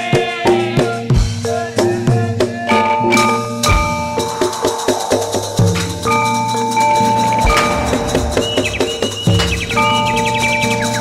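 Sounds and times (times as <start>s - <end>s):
gamelan music: 2.7s - 11.0s
high chirping whistle-like notes: 3.2s - 11.0s
quick drum strokes: 3.7s - 11.0s.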